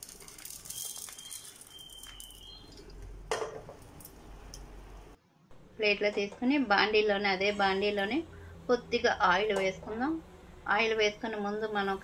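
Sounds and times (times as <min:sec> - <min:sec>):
spices pattering onto a plate: 0:00.0 - 0:03.0.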